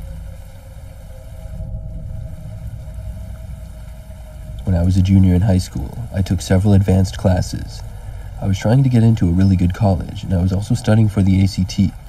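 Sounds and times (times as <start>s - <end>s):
faint hiss: 0.0s - 12.0s
faint steady tone: 0.0s - 12.0s
low rumble: 0.0s - 12.0s.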